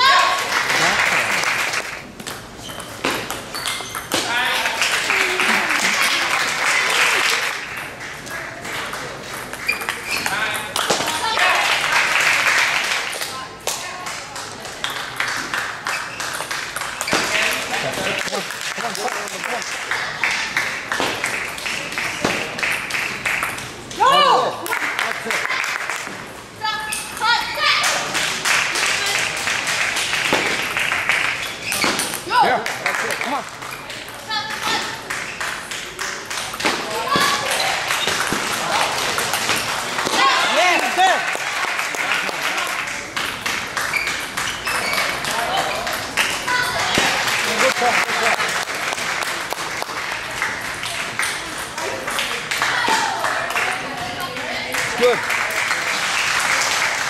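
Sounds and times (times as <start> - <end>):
crowd noise: 0.0 - 57.0
clapping: 37.9 - 44.6, 46.2 - 53.8.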